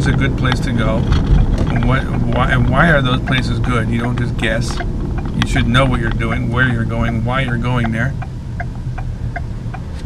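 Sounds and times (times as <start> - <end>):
car cabin hum and rumble: 0.0 - 10.0
turn signal ticking: 0.0 - 10.0.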